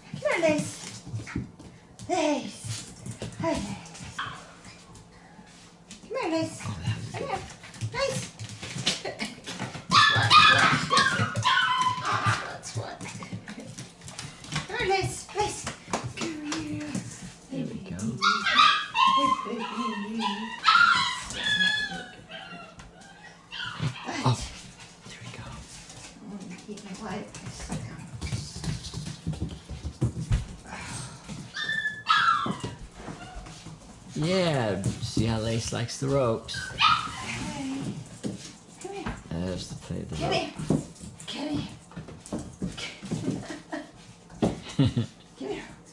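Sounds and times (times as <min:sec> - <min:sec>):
puppy yipping and whining: 0:09.9 - 0:12.6, 0:18.2 - 0:24.2, 0:31.5 - 0:33.5, 0:36.6 - 0:37.6.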